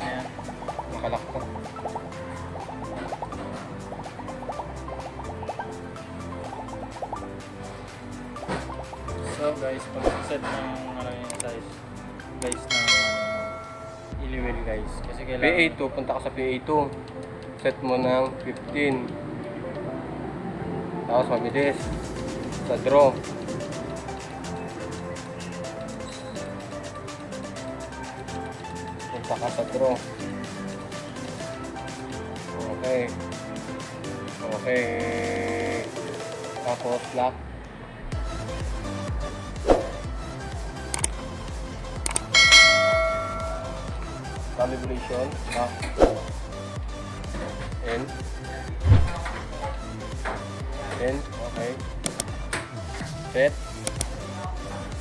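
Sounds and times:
background music with beat: 0.0 - 19.9, 21.4 - 37.2, 38.1 - 55.0
notification bell ding: 12.7 - 14.1, 42.3 - 44.0
quick clicks: 41.0 - 41.2, 42.0 - 42.3, 52.0 - 52.3, 53.8 - 54.2.

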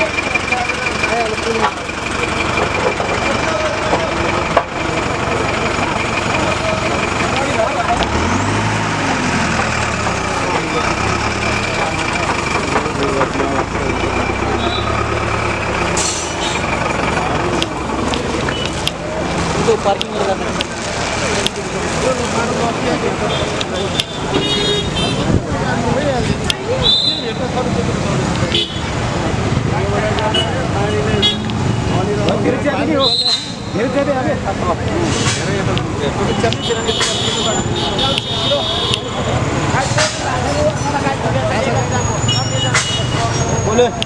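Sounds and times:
crowd talking indistinctly: 0.0 - 44.0
heavy vehicle engine running: 0.0 - 44.0.

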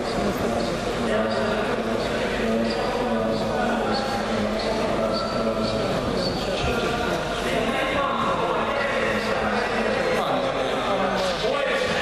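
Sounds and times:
indistinct talk in echoing hall: 0.0 - 12.0.

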